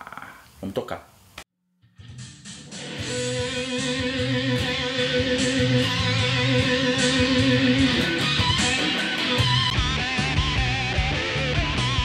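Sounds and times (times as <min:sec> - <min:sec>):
distorted electric guitar: 0:01.9 - 0:12.0.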